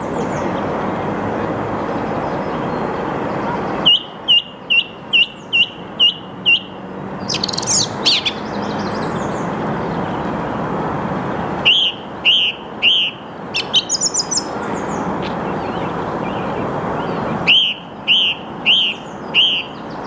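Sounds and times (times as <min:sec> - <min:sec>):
song thrush singing: 0:00.0 - 0:10.7, 0:11.5 - 0:20.0.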